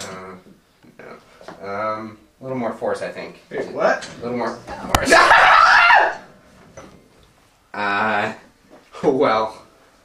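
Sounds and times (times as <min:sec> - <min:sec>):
man yelling: 0:05.0 - 0:06.2.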